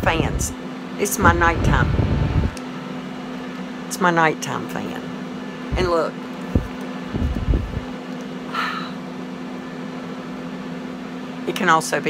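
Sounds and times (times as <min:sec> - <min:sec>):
handheld fan humming: 0:00.0 - 0:03.4, 0:05.4 - 0:08.7
low thumps: 0:01.2 - 0:02.6.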